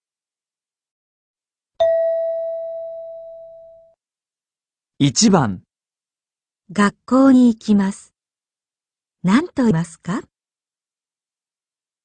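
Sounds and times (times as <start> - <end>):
bell-like chime: 1.8 - 4.0.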